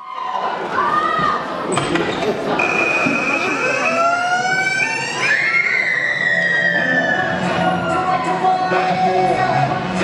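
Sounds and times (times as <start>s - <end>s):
wailing siren-like tone: 2.6s - 7.4s.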